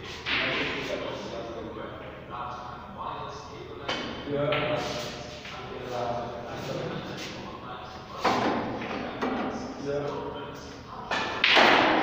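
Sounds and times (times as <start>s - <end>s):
voices in a large hall: 0.0s - 12.0s.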